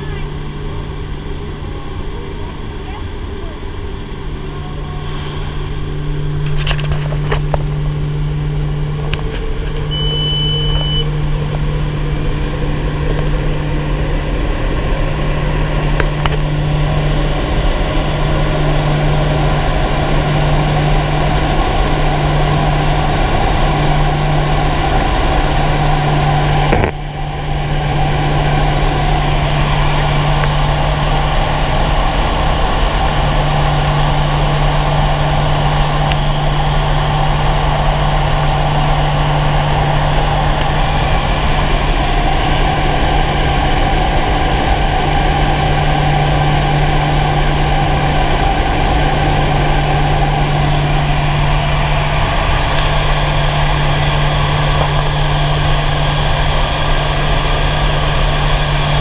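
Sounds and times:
turboprop engines droning: 0.0s - 59.0s.

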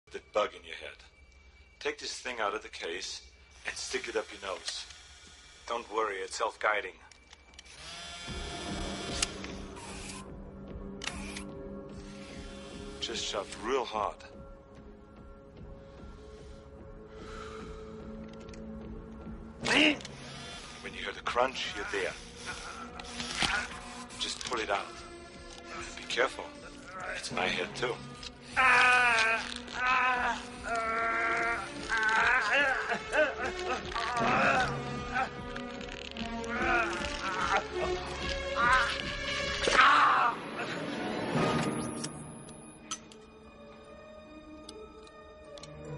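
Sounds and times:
tense film score music: 0.0s - 45.9s
hissy mechanical bursts: 3.5s - 6.0s
man crying out in pain: 28.4s - 35.4s, 36.5s - 38.0s.

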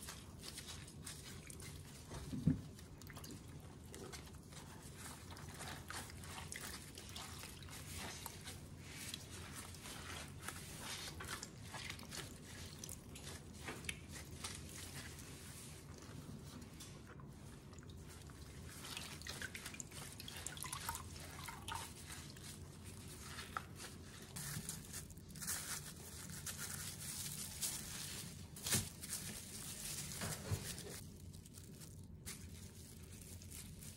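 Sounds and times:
gloves crinkling and squelching: 0.0s - 33.9s.

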